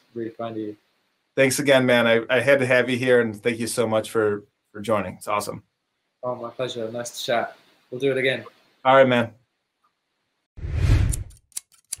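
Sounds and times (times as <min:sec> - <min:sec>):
scissors cutting paper: 0:11.1 - 0:12.0.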